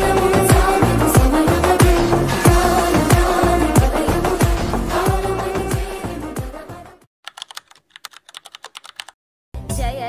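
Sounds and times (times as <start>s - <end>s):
keyboard typing clicks: 7.2s - 9.2s.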